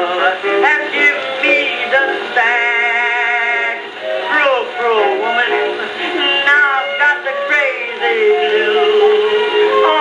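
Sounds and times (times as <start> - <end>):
old phonograph blues with jazz band: 0.0 - 10.0.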